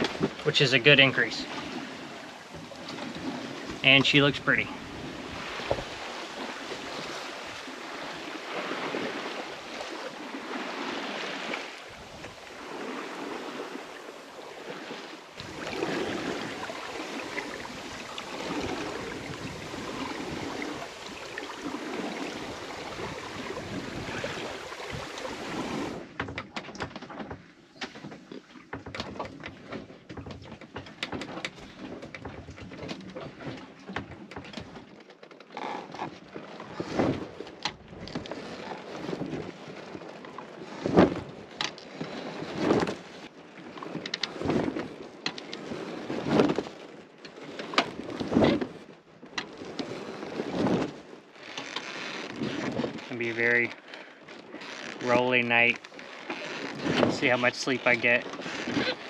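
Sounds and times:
boat knocks and creaks: 0:00.0 - 0:59.0
water splashing along hull: 0:00.0 - 0:59.0.

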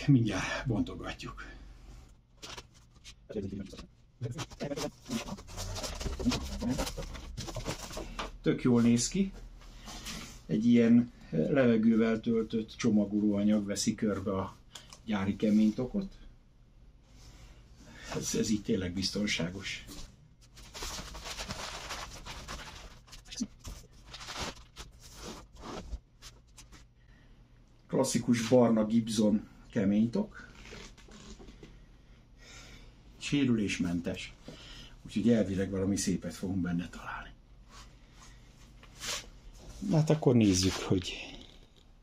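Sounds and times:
cardboard and plastic packaging rustling: 0:02.4 - 0:08.4, 0:20.4 - 0:26.9
plastic packaging crinkling: 0:20.5 - 0:25.7.

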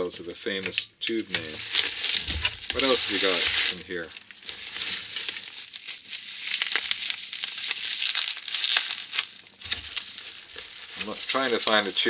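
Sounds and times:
bubble wrap crinkling: 0:01.1 - 0:12.0
packing peanuts rustling on cardboard: 0:01.2 - 0:12.0.

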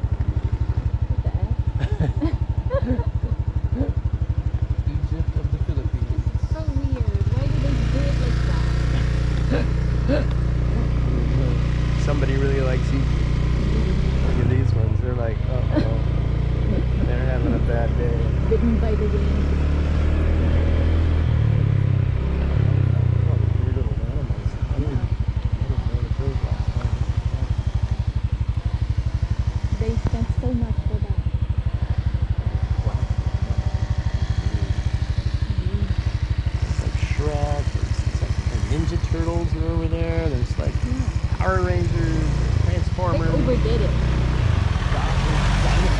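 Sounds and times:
motorcycle engine running: 0:00.0 - 0:45.9.

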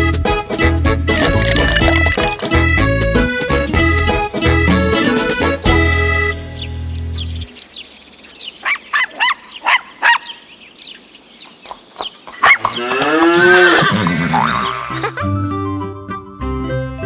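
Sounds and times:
cartoon music: 0:00.9 - 0:06.4
short chirping calls: 0:06.5 - 0:12.9
rising and falling animal call: 0:12.3 - 0:15.2.

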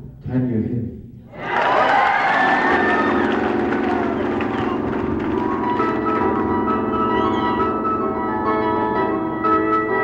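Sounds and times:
bell-like keyboard notes: 0:02.9 - 0:10.0.

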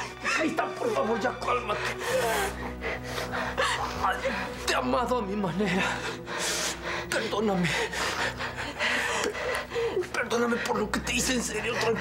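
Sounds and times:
background music: 0:00.0 - 0:12.0
pained gasping breaths: 0:01.7 - 0:04.7, 0:05.8 - 0:12.0.

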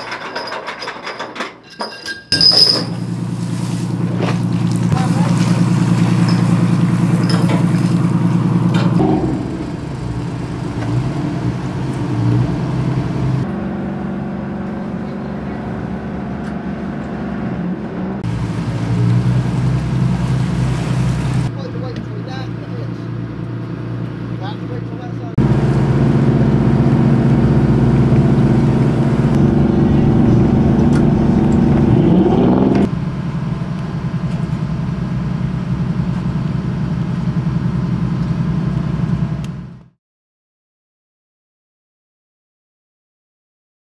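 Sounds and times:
boat engine droning: 0:02.5 - 0:39.9.

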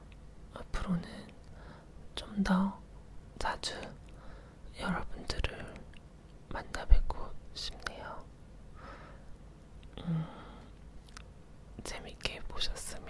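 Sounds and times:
woman whispering: 0:00.5 - 0:01.4, 0:02.1 - 0:02.8, 0:03.4 - 0:04.0, 0:04.7 - 0:05.9, 0:06.5 - 0:08.3, 0:11.8 - 0:13.0.

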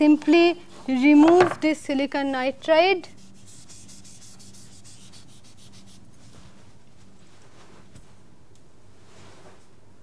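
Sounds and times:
low electrical hum: 0:00.0 - 0:10.0
scratching of drawing strokes: 0:03.1 - 0:06.4.

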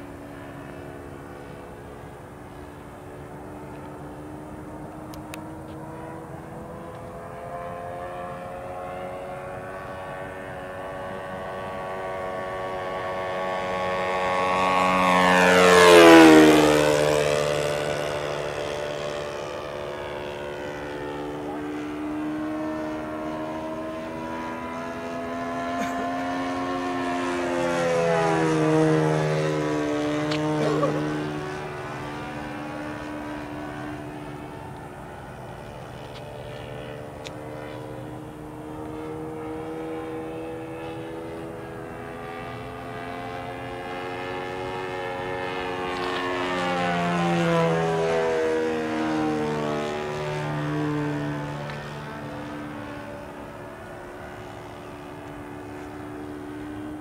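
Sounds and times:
model airplane engine flying past: 0:00.0 - 0:57.0.

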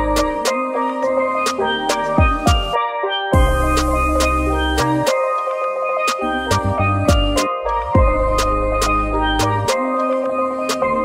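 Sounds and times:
steel pan melody: 0:00.0 - 0:11.0
drums and deep bass: 0:02.1 - 0:02.8, 0:03.4 - 0:05.1, 0:06.5 - 0:09.7.

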